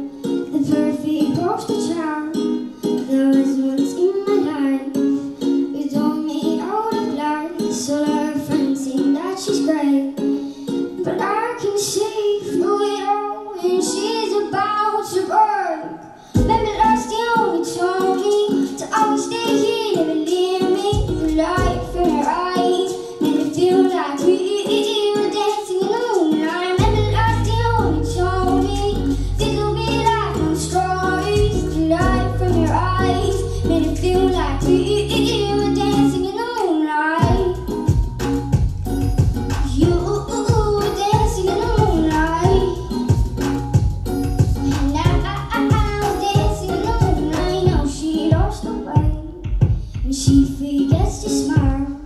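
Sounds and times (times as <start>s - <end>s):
girl singing into microphone: 0.0s - 38.1s, 39.1s - 52.0s
backing track: 13.6s - 52.0s
deep bass part: 16.4s - 16.9s, 31.3s - 34.8s, 37.3s - 47.8s.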